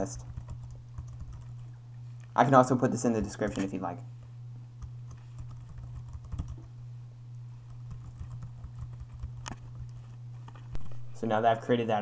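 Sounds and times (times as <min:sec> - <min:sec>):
steady low hum: 0:00.0 - 0:12.0
keyboard typing clicks: 0:00.2 - 0:01.6, 0:04.8 - 0:06.7, 0:07.7 - 0:10.0.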